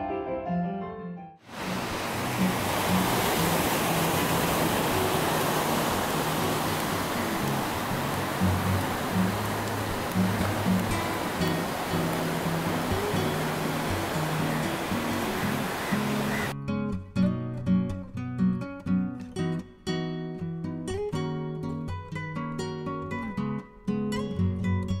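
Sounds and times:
ocean waves breaking: 0:01.5 - 0:16.5.

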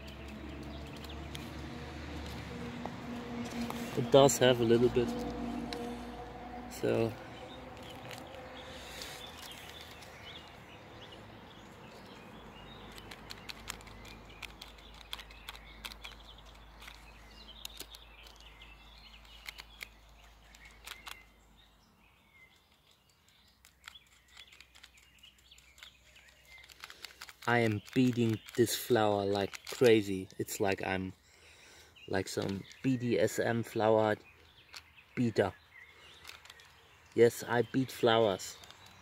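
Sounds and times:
soft clicks and paper rustles: 0:00.0 - 0:04.2, 0:07.7 - 0:10.6, 0:11.6 - 0:21.3, 0:22.6 - 0:30.4, 0:36.1 - 0:37.2, 0:38.4 - 0:39.0
faint birds chirping: 0:00.0 - 0:39.0.

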